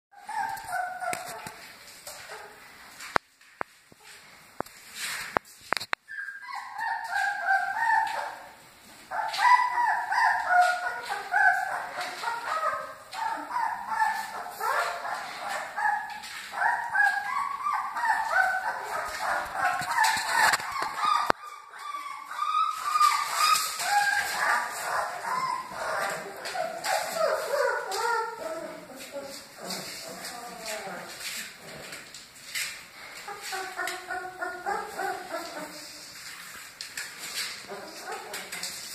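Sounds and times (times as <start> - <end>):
puppies whimpering and yipping: 0.2 - 2.6, 6.1 - 32.0, 33.2 - 36.0, 37.4 - 38.9.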